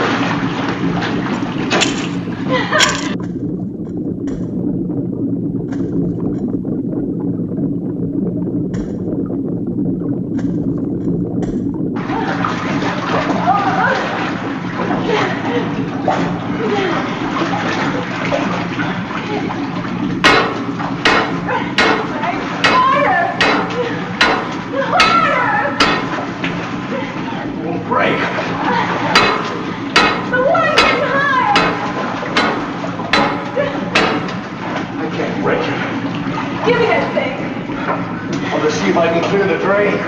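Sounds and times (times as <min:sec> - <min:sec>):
water pouring into pool: 0:00.0 - 0:30.0
sharp knocks: 0:20.2 - 0:22.8, 0:23.4 - 0:25.2, 0:29.2 - 0:33.4, 0:34.0 - 0:34.4.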